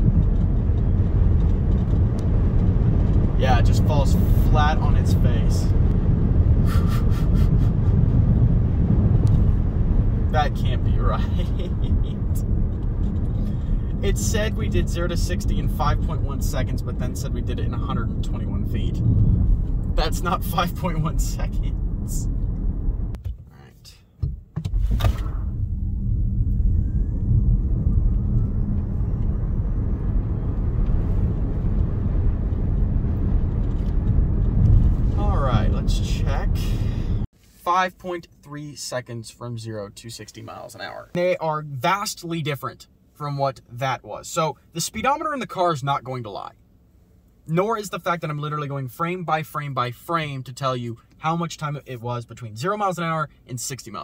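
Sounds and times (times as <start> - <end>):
tyre and road noise in car: 0.0 - 37.4
faint rising whine: 25.2 - 37.3.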